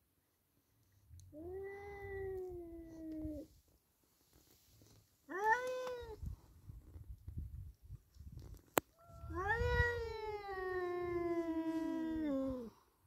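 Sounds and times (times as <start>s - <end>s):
cats yowling: 5.3s - 6.2s, 9.0s - 12.7s.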